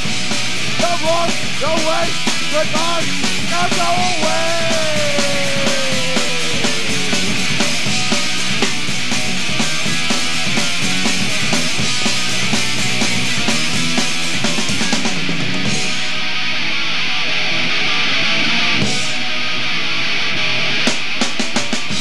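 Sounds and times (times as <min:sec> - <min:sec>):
instrumental rock band playing: 0:00.0 - 0:22.0.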